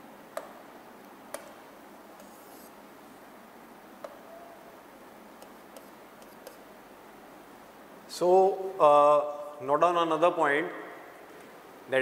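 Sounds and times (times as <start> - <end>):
faint room hiss: 0.0 - 12.0
taps of writing on a board: 5.4 - 6.6.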